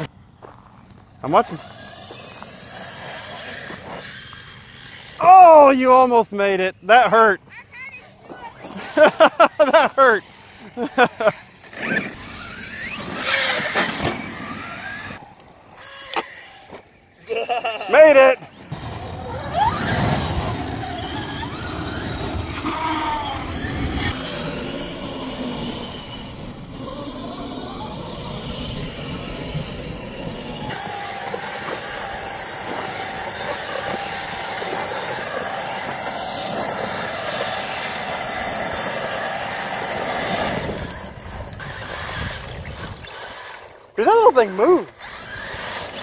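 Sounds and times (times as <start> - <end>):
electric motors whining: 0.0 - 46.0
tyres throwing dirt: 8.2 - 15.2, 30.7 - 46.0.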